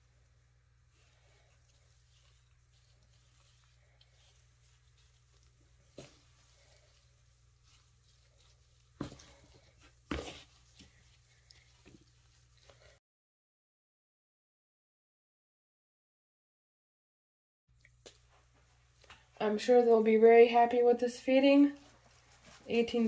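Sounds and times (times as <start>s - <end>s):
rustling of compost and leaves: 0.9s - 13.0s.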